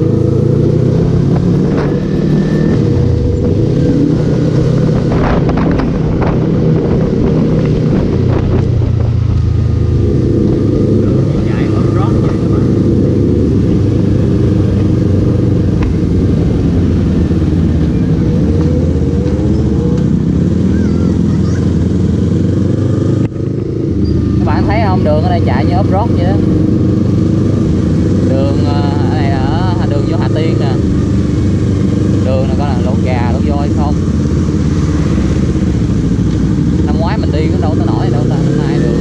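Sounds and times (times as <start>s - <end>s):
motorcycle engine running: 0.0s - 39.0s.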